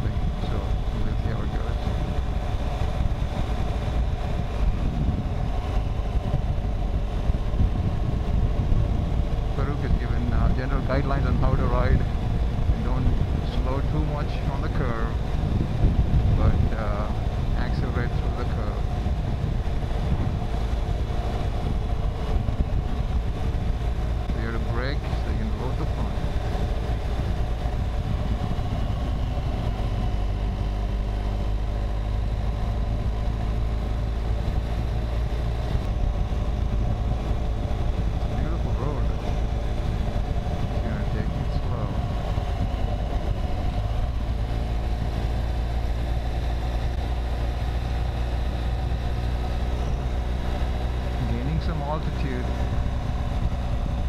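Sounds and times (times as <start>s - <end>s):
motorcycle engine cruising: 0.0s - 54.0s.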